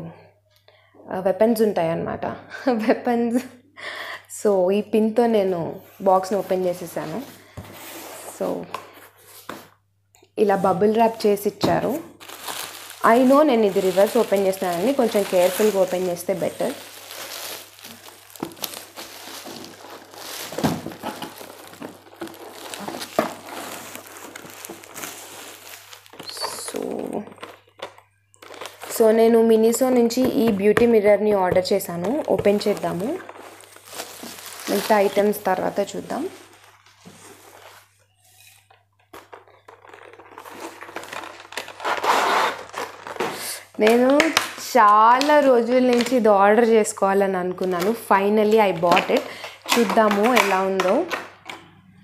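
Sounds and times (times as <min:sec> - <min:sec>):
bubble wrap crinkling: 0:10.4 - 0:30.7, 0:31.4 - 0:46.8, 0:47.6 - 0:51.2
paper rustling: 0:11.8 - 0:29.1, 0:32.0 - 0:43.5.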